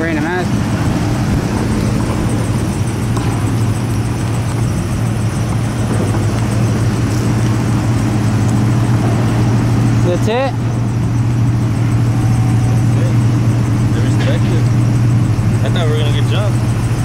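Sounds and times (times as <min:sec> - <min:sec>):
pickup truck engines humming: 0:00.0 - 0:17.0
tyre and road noise: 0:00.0 - 0:17.0.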